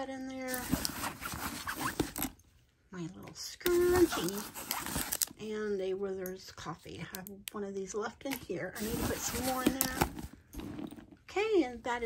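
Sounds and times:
hand rummaging in handbag pocket: 0.4 - 2.4, 3.7 - 5.4, 8.3 - 11.2.

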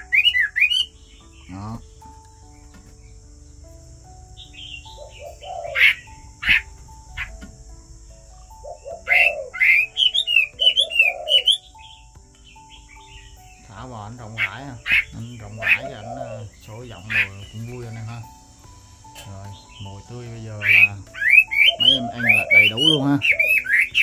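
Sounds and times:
bird whistling song: 0.0 - 3.2, 4.3 - 24.0.

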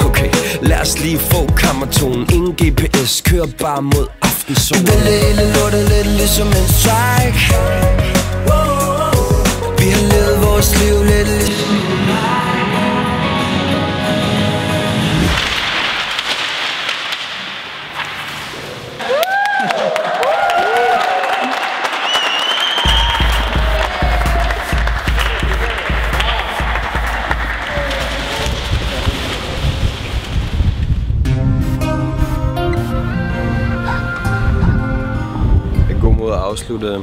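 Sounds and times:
heavy bass beat: 0.0 - 11.5, 22.9 - 29.0
music track: 0.0 - 15.4, 31.3 - 35.9
group clapping: 19.0 - 29.4
people shouting: 22.8 - 28.7.

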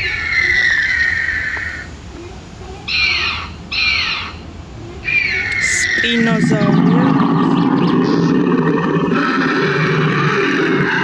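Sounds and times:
high bird-like calls: 0.0 - 1.9, 2.8 - 11.0.

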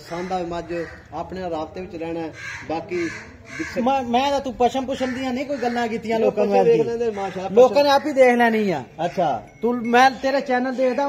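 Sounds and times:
harsh bird calls: 0.0 - 9.4.

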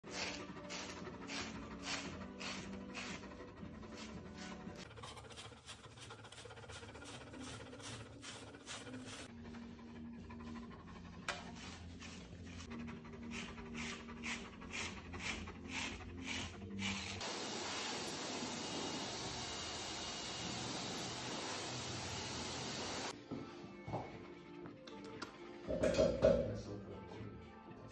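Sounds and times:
dog panting: 0.1 - 17.2
dog blow dryer rushing: 17.2 - 23.1.

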